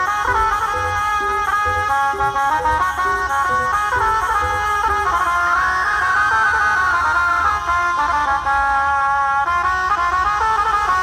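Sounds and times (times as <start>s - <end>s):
low drum and bass beat: 0.0s - 5.2s.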